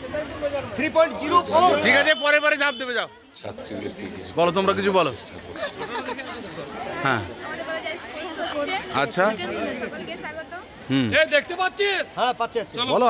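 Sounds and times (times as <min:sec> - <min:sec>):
women chattering: 0:03.0 - 0:11.1.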